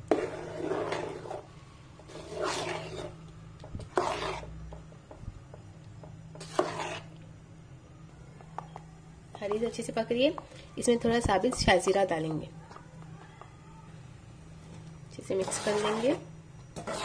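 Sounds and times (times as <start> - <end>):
spoon stirring thick porridge: 0.0 - 7.3, 14.8 - 17.0
low steady hum: 0.0 - 17.0.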